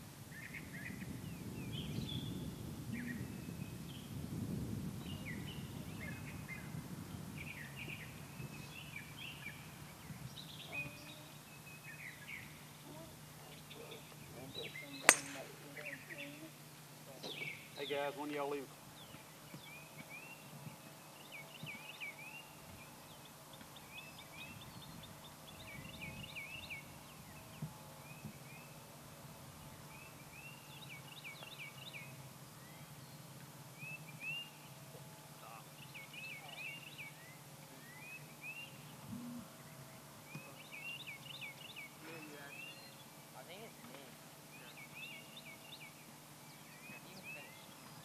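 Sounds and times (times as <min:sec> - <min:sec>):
low steady hum: 0:00.0 - 0:48.0
songbird chirping: 0:05.0 - 0:28.9, 0:29.6 - 0:48.0.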